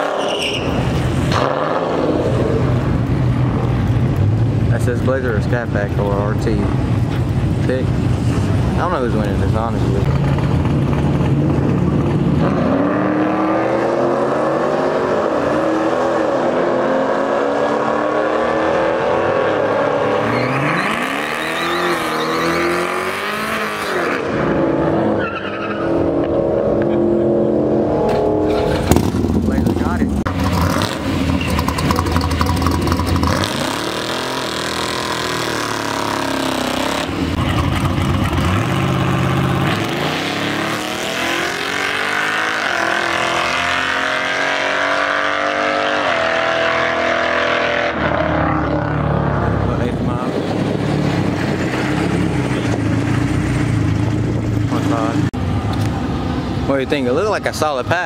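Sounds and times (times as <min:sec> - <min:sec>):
racing engines revving: 0:00.0 - 0:58.0.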